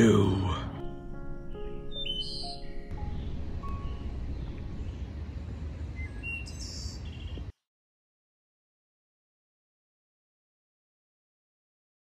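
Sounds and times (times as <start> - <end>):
held musical chord: 0.0 - 5.4
low wind rumble: 0.0 - 7.5
bird chirps: 1.9 - 7.5.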